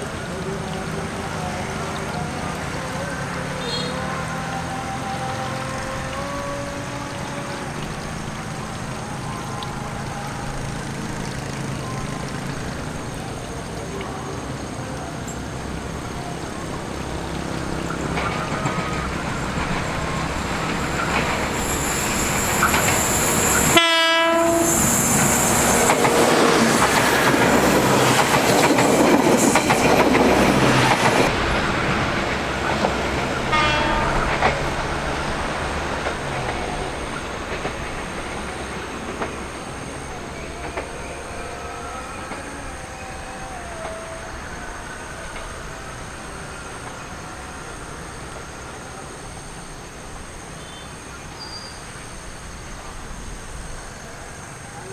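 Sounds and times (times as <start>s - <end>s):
train horn: 3.4s - 11.0s, 21.0s - 28.5s, 33.4s - 35.0s
train wheels clattering: 24.7s - 41.4s.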